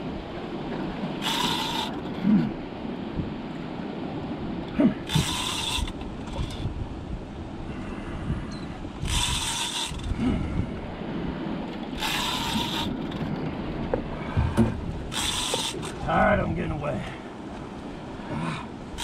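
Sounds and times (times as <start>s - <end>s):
water noise: 0.0s - 19.0s
wind: 0.0s - 19.0s
fishing reel cranking: 1.2s - 2.0s, 5.1s - 6.7s, 9.0s - 10.2s, 12.0s - 13.2s, 15.1s - 16.0s.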